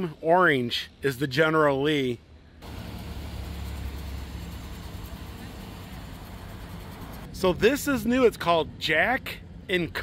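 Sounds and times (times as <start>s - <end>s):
street noise: 1.8s - 10.0s
vehicle engine rumble: 2.6s - 10.0s.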